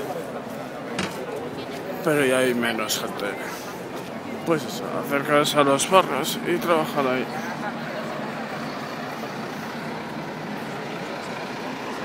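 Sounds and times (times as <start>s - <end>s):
crowd noise: 0.0s - 12.0s
traffic noise: 0.0s - 12.0s.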